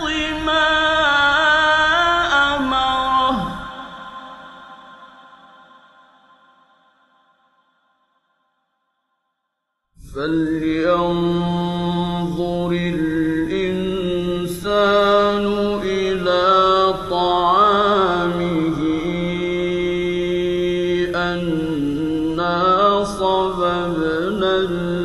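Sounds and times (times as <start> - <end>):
man reciting melodically: 0.0 - 5.2, 10.0 - 25.0.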